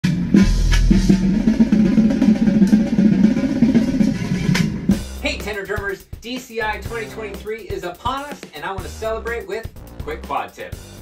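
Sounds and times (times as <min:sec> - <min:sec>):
bass drums: 0:00.0 - 0:11.0
tenor drums playing fast: 0:00.0 - 0:11.0.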